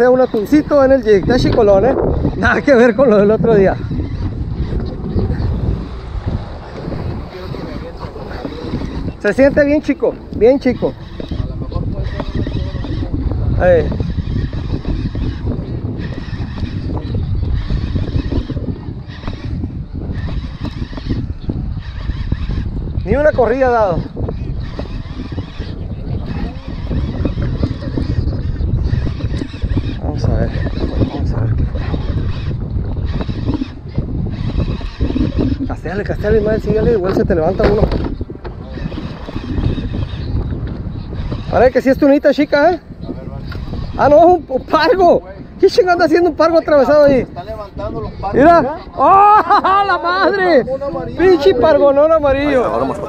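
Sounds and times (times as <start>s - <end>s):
wind buffeting microphone: 0.0s - 53.0s
fishing reel gears whirring: 2.4s - 42.8s.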